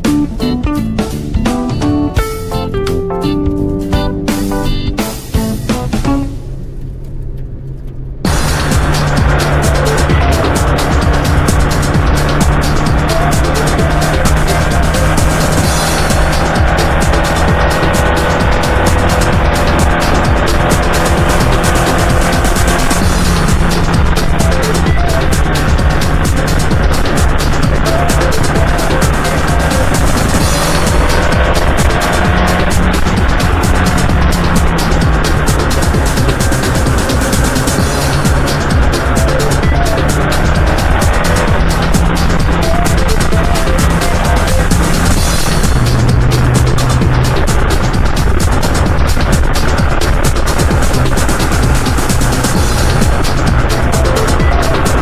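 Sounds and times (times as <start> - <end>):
background music: 0.0 - 55.0
road and tyre noise: 2.2 - 55.0
small car engine running: 3.6 - 55.0.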